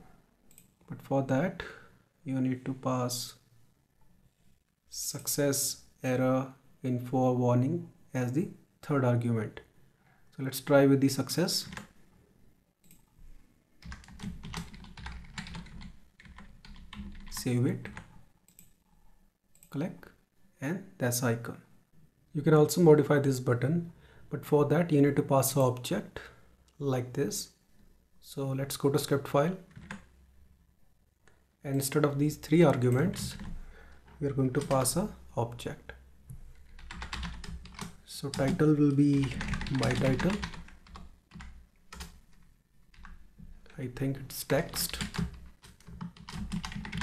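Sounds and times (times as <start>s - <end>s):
typing on computer keyboard: 11.6s - 11.9s, 13.8s - 18.8s, 29.7s - 30.1s, 32.9s - 35.0s, 36.6s - 43.2s, 44.6s - 47.0s.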